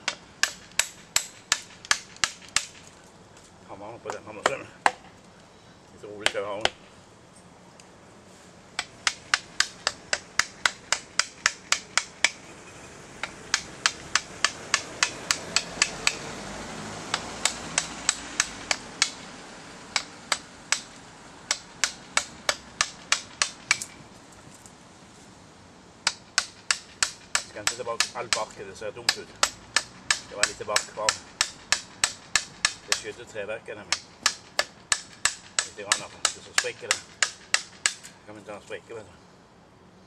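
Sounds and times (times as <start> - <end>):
hammer striking a chisel: 0.0 - 2.8, 8.8 - 12.4, 13.2 - 16.3, 17.1 - 19.3, 20.0 - 24.0, 26.0 - 33.1, 33.9 - 38.1.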